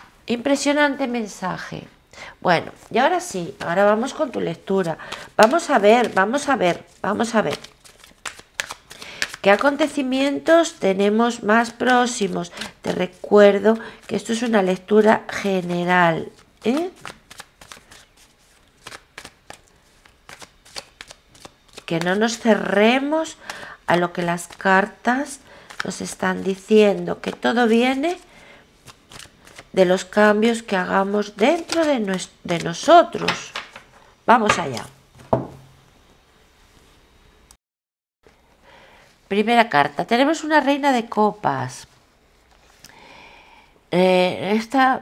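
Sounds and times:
faint room hiss: 0:00.0 - 0:37.6, 0:38.3 - 0:45.0
cards being shuffled: 0:03.6 - 0:09.9, 0:11.6 - 0:25.0, 0:25.6 - 0:28.2, 0:28.8 - 0:33.9.

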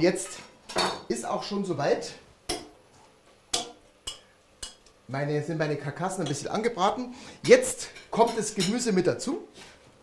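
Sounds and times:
spoon knocking on metal pot: 0:03.5 - 0:04.8.

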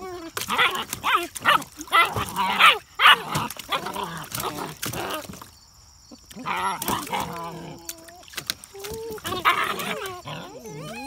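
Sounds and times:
puppies crying and barking: 0:00.0 - 0:05.4, 0:06.1 - 0:11.0
water splashing: 0:00.0 - 0:05.6, 0:06.3 - 0:10.8.

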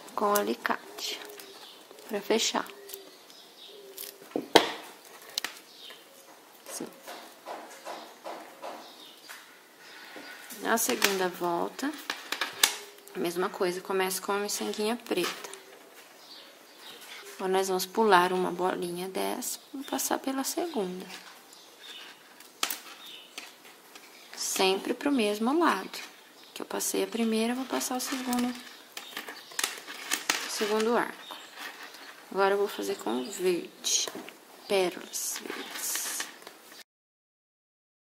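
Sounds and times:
beads and wire handling: 0:00.0 - 0:07.9, 0:09.0 - 0:13.4, 0:20.6 - 0:36.5.

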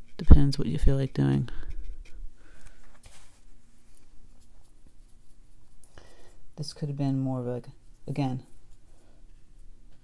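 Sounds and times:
brush scratching in palette: 0:00.0 - 0:02.3, 0:03.0 - 0:06.2.

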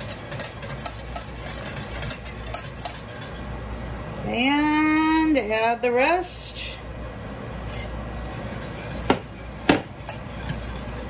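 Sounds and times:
kitchenware clinking: 0:00.0 - 0:03.6
wire whisk in saucepan: 0:00.0 - 0:03.7, 0:07.7 - 0:11.0.

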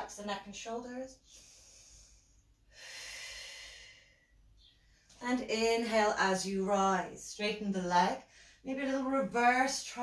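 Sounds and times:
woman breathing: 0:01.1 - 0:05.2, 0:08.2 - 0:08.7.

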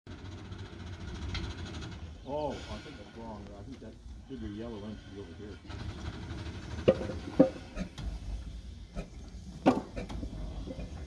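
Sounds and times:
steam engine running: 0:00.1 - 0:11.0
short hiss of steam: 0:02.4 - 0:03.4.

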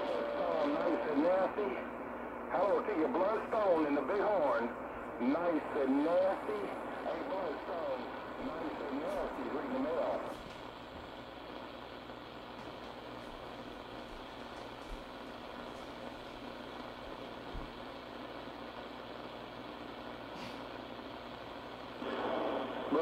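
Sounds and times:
radio static hiss: 0:00.0 - 0:23.0.

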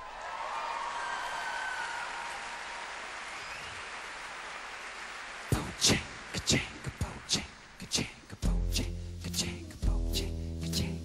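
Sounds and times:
audience cheering: 0:00.0 - 0:07.3
audience applauding: 0:00.0 - 0:07.8.

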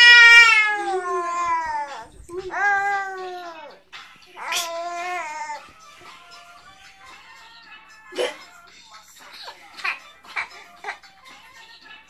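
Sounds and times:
baby squealing: 0:00.0 - 0:03.8, 0:04.4 - 0:05.6.

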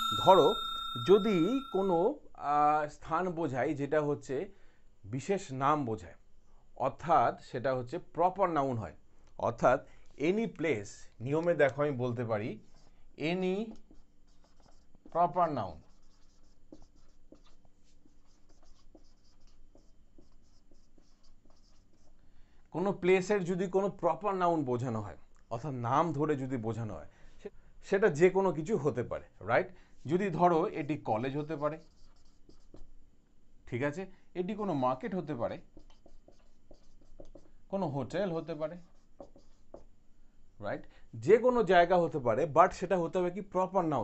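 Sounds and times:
marker scratching on whiteboard: 0:12.6 - 0:22.2, 0:31.1 - 0:32.9, 0:35.4 - 0:40.0.

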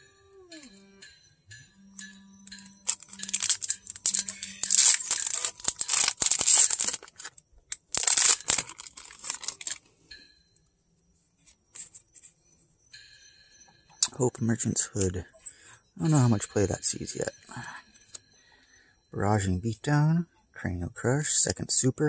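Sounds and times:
wrapper ripping and crinkling: 0:02.8 - 0:09.8.

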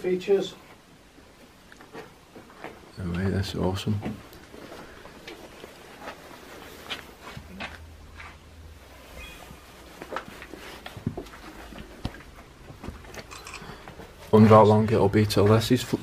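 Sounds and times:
footsteps: 0:00.6 - 0:16.0.

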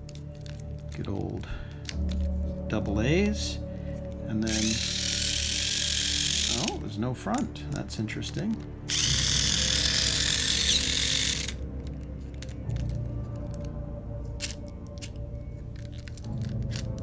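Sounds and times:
electric motor gear whirring: 0:04.5 - 0:06.8, 0:08.9 - 0:11.6
gear clicks: 0:08.9 - 0:11.6.

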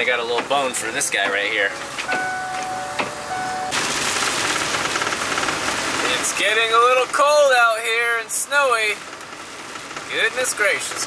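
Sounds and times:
bus engine and road noise: 0:00.0 - 0:11.0.

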